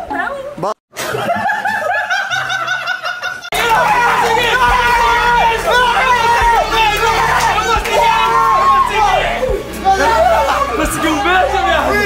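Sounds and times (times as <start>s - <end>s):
men laughing hard: 1.0s - 11.0s.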